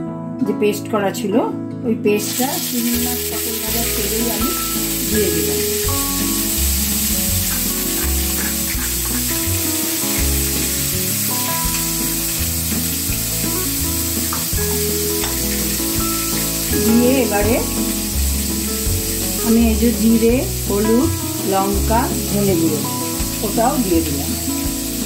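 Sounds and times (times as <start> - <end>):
paste sizzling in hot oil: 2.2 - 25.0
background music with bass line: 2.4 - 25.0.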